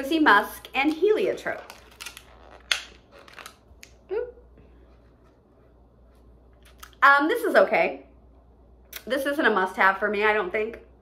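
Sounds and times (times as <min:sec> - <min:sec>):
plastic packaging clicking and crackling: 0:00.8 - 0:03.9.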